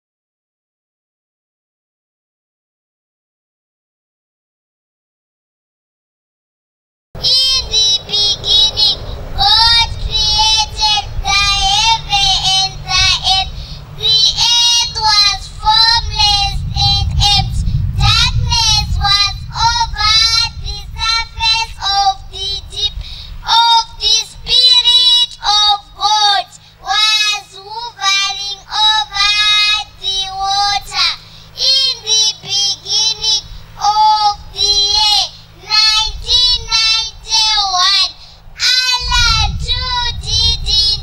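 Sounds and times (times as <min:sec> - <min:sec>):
girl singing into a microphone: 0:07.2 - 0:41.0
low background rumble: 0:07.2 - 0:41.0.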